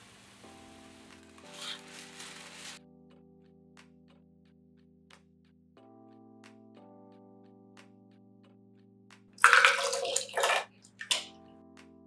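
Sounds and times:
wet peppers pouring into blender: 0:09.4 - 0:11.2.

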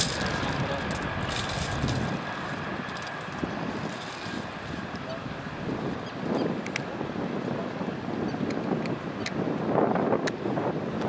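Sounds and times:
helicopter flying overhead: 0:00.0 - 0:07.2
wind on microphone: 0:00.0 - 0:11.0.

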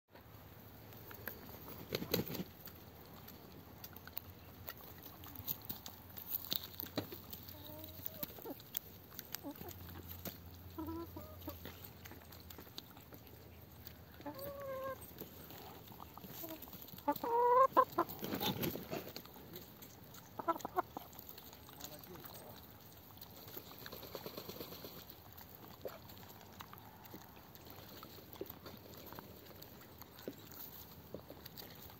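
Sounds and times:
chicken clucking softly: 0:07.4 - 0:31.9.

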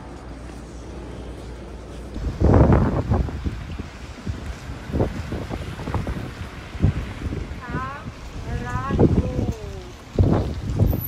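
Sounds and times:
wind buffeting microphone: 0:02.1 - 0:11.0.

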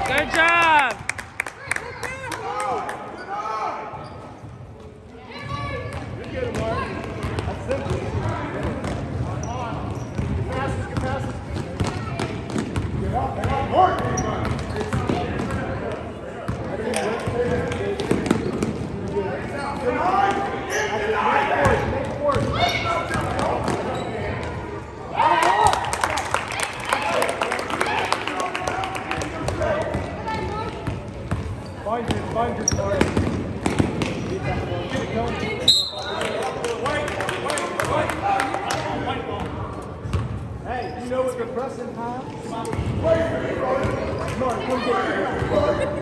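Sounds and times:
voices of players and spectators: 0:00.0 - 0:46.0.

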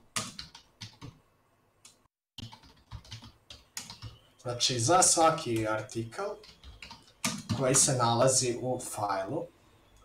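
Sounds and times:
keyboard key clicks: 0:06.4 - 0:07.8.

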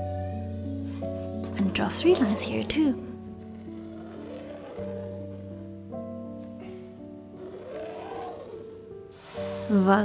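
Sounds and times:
soft instrumental music: 0:00.0 - 0:10.0.

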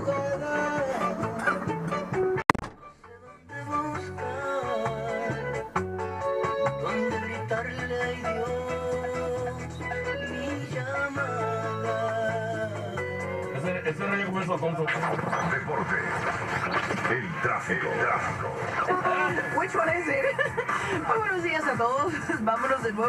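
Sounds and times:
radio music with strong bass: 0:00.0 - 0:05.5, 0:06.9 - 0:23.0.

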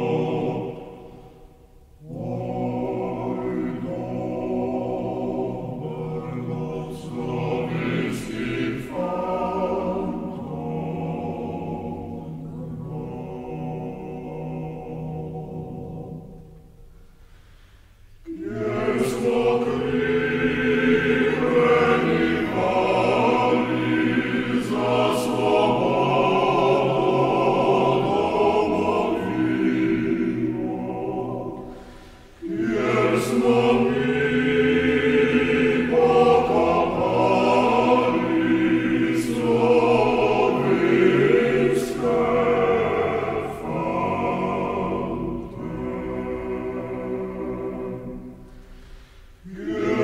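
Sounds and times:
male choir singing a cappella: 0:00.0 - 0:16.6, 0:18.2 - 0:50.0.

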